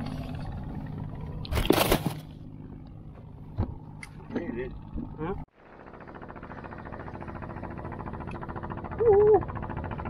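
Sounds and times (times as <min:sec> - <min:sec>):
machine running with fast pulse: 0:05.6 - 0:10.0.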